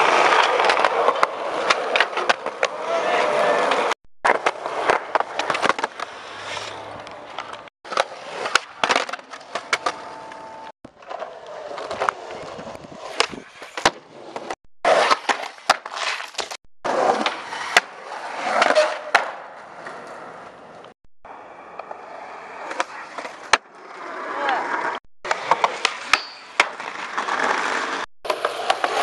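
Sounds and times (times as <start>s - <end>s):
skateboard wheels rolling on concrete: 0.0s - 29.0s
skateboard clacking on ground: 22.6s - 29.0s.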